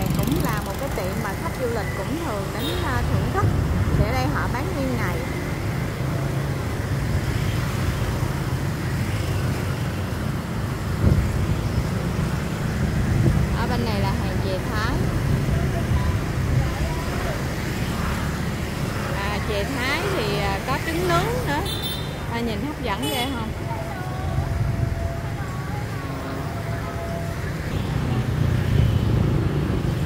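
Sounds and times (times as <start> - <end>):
motorbikes riding past: 0.0 - 8.2, 8.8 - 30.0
people talking nearby: 13.5 - 18.2.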